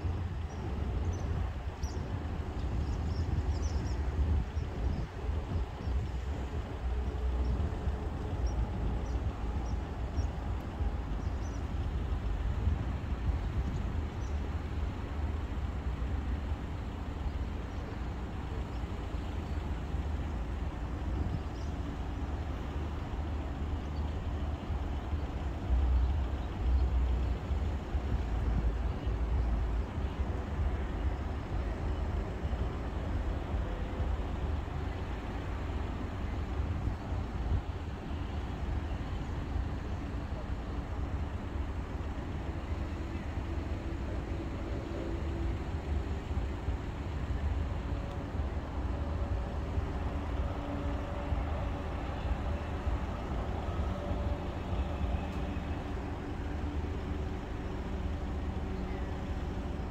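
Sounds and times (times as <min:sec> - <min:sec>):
distant road traffic hum: 0:00.0 - 0:59.9
wind rumble on microphone: 0:00.0 - 0:59.9.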